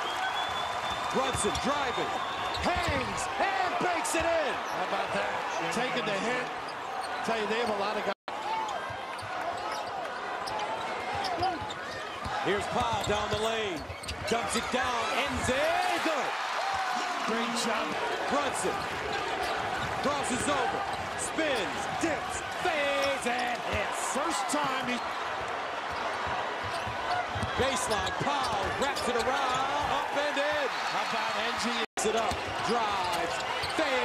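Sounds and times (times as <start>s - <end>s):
sneaker squeaks: 8.6s - 14.6s, 25.9s - 29.8s
crowd shouting: 14.3s - 34.0s.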